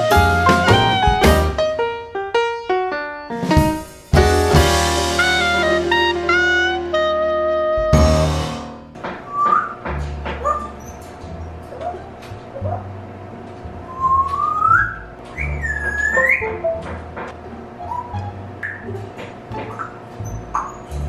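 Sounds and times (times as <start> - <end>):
music track chord: 0.0 - 9.0
parrot whistling: 13.9 - 16.6, 17.8 - 18.9.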